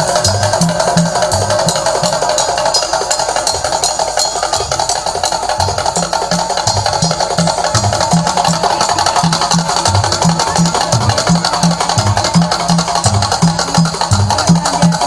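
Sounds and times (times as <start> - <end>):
clattering wooden percussion: 0.0 - 15.0
low drum beat: 0.0 - 15.0.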